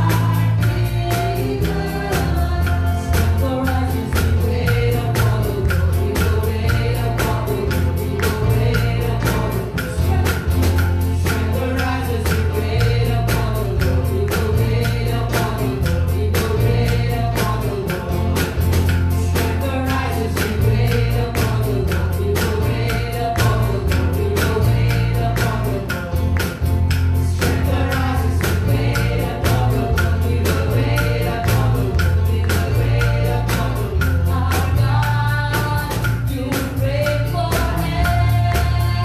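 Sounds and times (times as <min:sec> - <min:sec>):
group singing gospel song: 0:00.0 - 0:39.0
keyboard accompaniment: 0:00.0 - 0:39.0
steady beat: 0:00.0 - 0:39.0.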